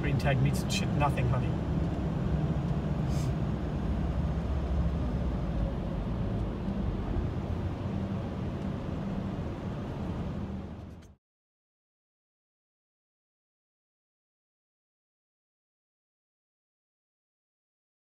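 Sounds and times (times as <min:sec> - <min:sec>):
motorhome engine low rumble: 0:00.0 - 0:11.2.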